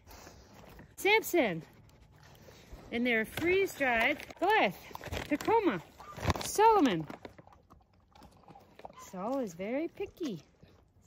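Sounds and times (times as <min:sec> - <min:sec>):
dogs chewing treats: 0:00.0 - 0:11.0.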